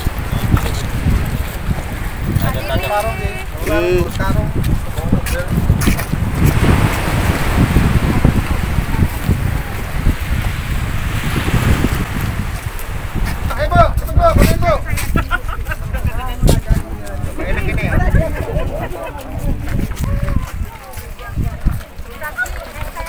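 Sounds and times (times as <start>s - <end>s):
wind buffeting microphone: 0.0s - 23.0s
people talking: 2.2s - 6.0s, 7.9s - 10.4s, 13.4s - 23.0s.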